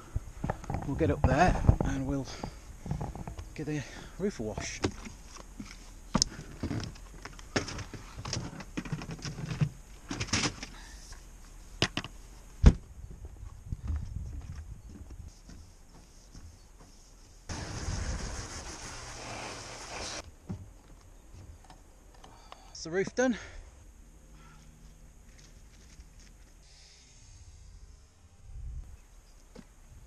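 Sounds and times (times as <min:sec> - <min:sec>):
steady hiss: 0:15.3 - 0:20.2, 0:26.4 - 0:30.0.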